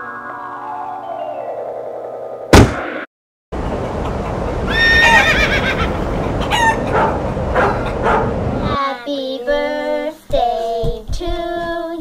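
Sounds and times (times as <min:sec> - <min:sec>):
steady rushing noise: 0:03.6 - 0:08.8
animal wavering cry: 0:04.7 - 0:05.9.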